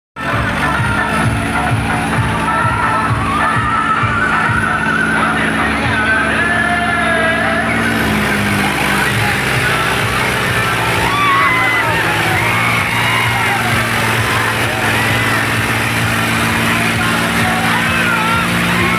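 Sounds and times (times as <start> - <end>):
crowd shouting: 0.2 - 18.9
loud music with heavy beat: 0.2 - 18.9
tractor engine revving: 0.2 - 18.9.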